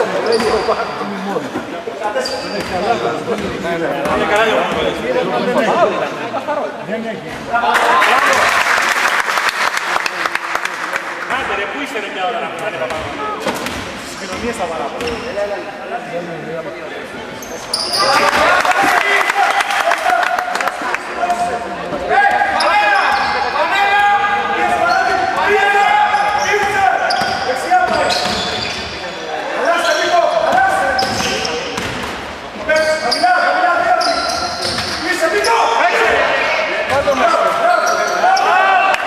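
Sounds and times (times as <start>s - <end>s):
players calling out: 17.4s - 32.0s.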